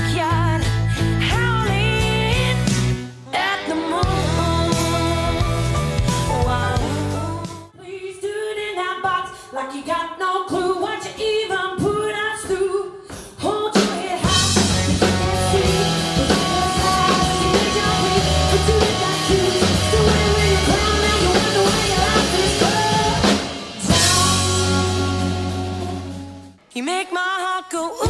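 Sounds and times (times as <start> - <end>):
bass guitar: 0.0 - 3.2, 3.8 - 7.7, 14.2 - 26.6
drum kit: 0.0 - 7.7, 10.9 - 26.6
electric guitar: 0.0 - 7.7, 14.2 - 26.6
female lead vocal: 0.0 - 28.0.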